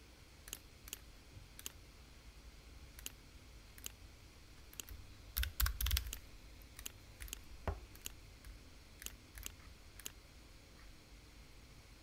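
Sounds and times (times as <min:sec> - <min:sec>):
computer mouse clicks: 0:00.5 - 0:01.0, 0:01.6 - 0:01.8, 0:03.0 - 0:03.2, 0:03.8 - 0:04.0, 0:04.6 - 0:10.2.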